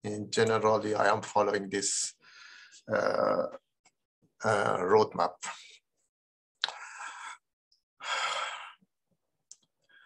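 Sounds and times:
man breathing: 2.2 - 2.9, 6.6 - 8.9.

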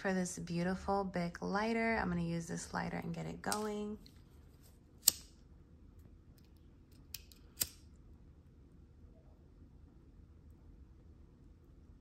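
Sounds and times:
lighter spark wheel clicks: 7.0 - 7.9.

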